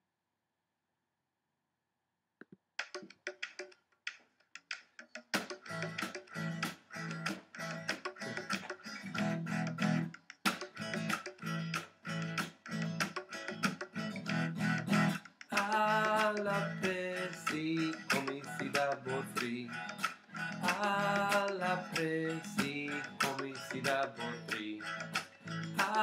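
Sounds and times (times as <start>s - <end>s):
acoustic guitar strumming: 5.4s - 26.0s.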